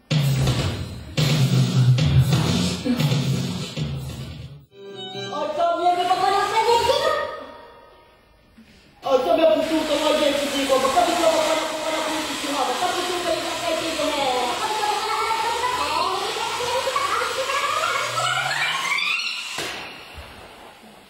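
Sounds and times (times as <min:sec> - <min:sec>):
casing tube squealing: 0:15.8 - 0:19.6.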